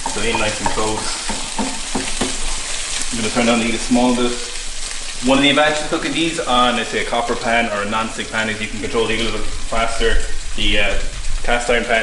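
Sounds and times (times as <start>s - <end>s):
spatula tapping and scraping pan: 0.0s - 3.0s
latkes sizzling in a pan: 0.0s - 12.0s.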